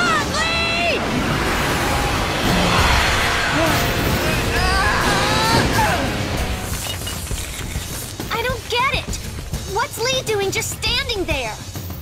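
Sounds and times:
background music: 0:00.0 - 0:12.0
wordless vocal cries: 0:00.2 - 0:06.5.

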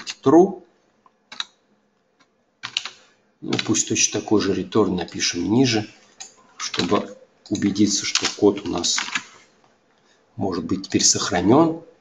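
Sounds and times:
computer keyboard keystrokes: 0:01.3 - 0:01.6, 0:02.6 - 0:03.8, 0:06.2 - 0:09.4.

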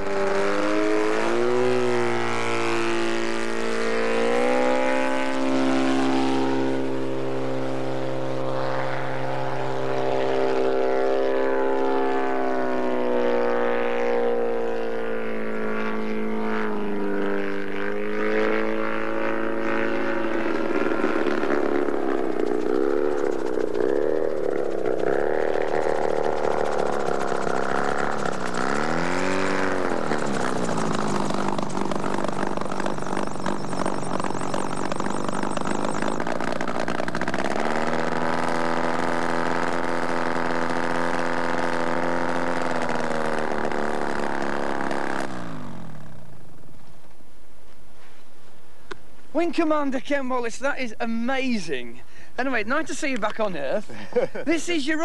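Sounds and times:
autogyro engine and propeller: 0:00.0 - 0:55.0.

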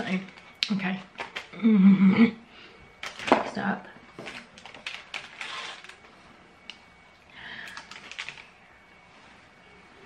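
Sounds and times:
snack wrappers crinkling: 0:00.1 - 0:01.6, 0:04.2 - 0:06.9, 0:07.6 - 0:08.6.

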